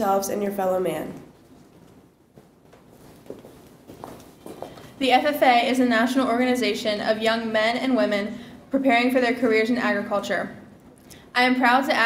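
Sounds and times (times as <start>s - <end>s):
footsteps with heels clicking: 1.5s - 5.0s.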